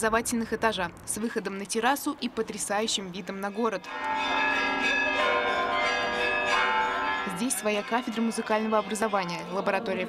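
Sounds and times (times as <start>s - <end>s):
church bells ringing: 2.8s - 10.0s.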